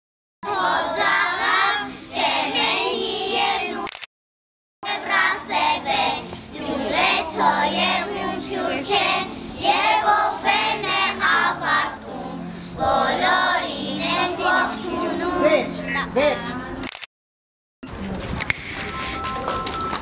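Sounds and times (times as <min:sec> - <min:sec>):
children singing in unison: 0:00.4 - 0:03.8, 0:04.8 - 0:15.8.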